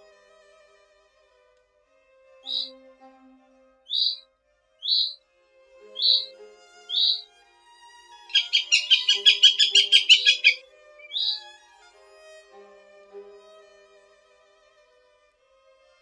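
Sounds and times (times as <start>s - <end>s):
soft violin music: 0.0s - 16.0s
goshawk calls: 2.4s - 2.7s, 3.9s - 4.2s, 4.8s - 5.2s, 6.0s - 6.3s, 6.9s - 7.2s, 8.3s - 11.5s.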